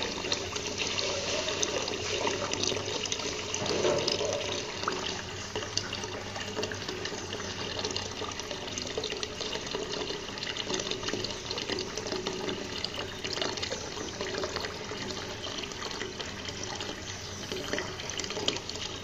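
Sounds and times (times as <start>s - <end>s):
water pouring into pond: 0.0s - 19.0s.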